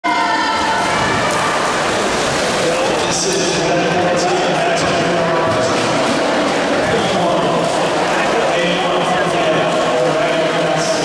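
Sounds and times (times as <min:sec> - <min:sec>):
crowd noise: 0:00.0 - 0:11.0
swimmers diving and splashing: 0:00.1 - 0:11.0.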